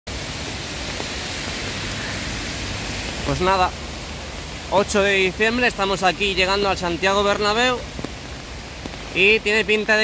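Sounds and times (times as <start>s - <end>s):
rain hissing on an umbrella: 0.1s - 10.0s.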